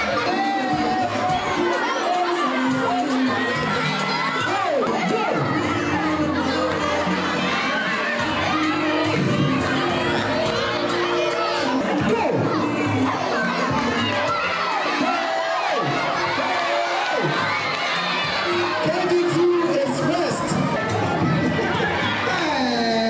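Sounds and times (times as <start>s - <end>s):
children shouting and cheering: 0.0s - 23.0s.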